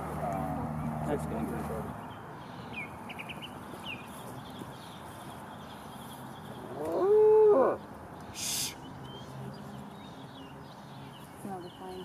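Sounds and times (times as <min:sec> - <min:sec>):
short hiss: 0:08.4 - 0:08.8.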